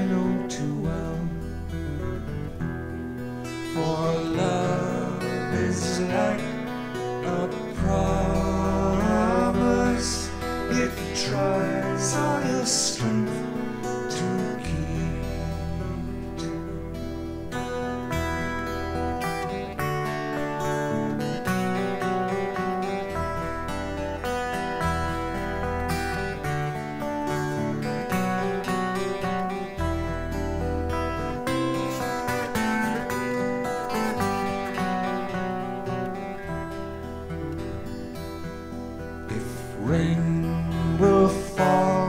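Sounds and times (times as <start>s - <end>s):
acoustic guitars playing folk: 0.0s - 42.0s.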